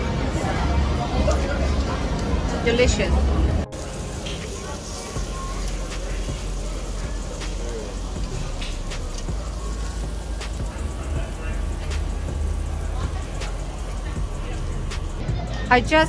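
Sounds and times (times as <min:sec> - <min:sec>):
meat sizzling on grill plate: 0:03.7 - 0:15.2.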